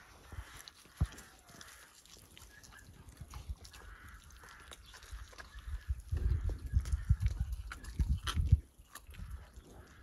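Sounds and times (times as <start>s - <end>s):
lion cub chewing meat and bone: 0.0s - 10.0s.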